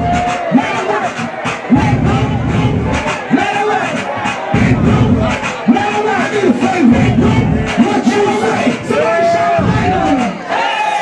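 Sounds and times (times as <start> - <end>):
bass-heavy club music: 0.0 - 11.0
crowd shouting and cheering: 0.0 - 11.0.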